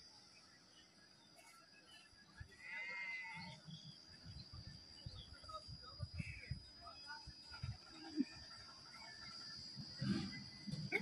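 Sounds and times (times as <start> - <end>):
steady high-pitched whine: 0.0 - 11.0
faint animal cry: 2.5 - 3.7.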